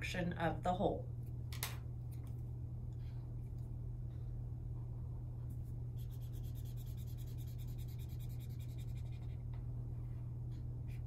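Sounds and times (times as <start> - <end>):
steady low hum: 0.0 - 11.0
marker scribbling on paper: 6.0 - 9.4.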